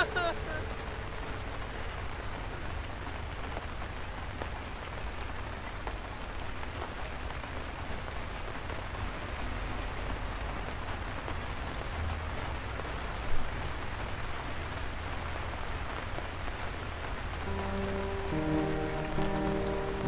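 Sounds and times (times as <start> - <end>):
rain falling on forest floor: 0.0 - 20.0.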